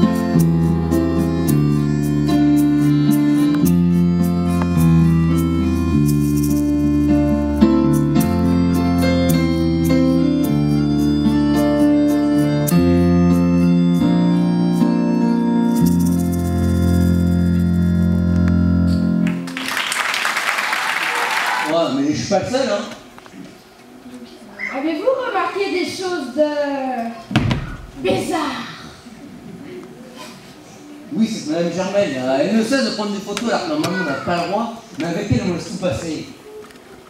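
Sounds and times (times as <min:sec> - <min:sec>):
bass line: 0:00.0 - 0:19.5
keyboard playing sustained chords: 0:00.0 - 0:20.2.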